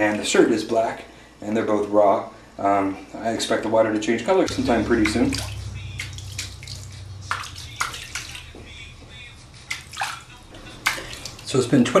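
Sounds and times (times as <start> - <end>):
water splashing in hot tub: 4.5 - 8.6, 9.6 - 12.0.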